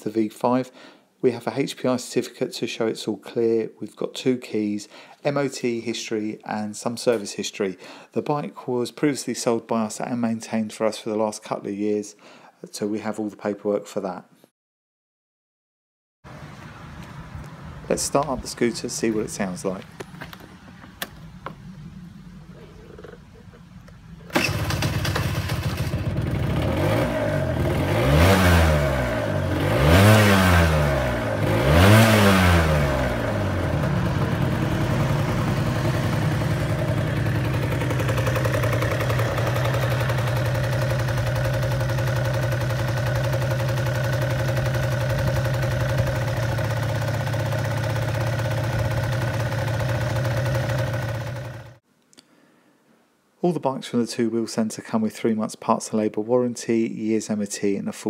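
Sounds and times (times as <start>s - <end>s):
scooter engine starting and revving: 20.0s - 51.8s.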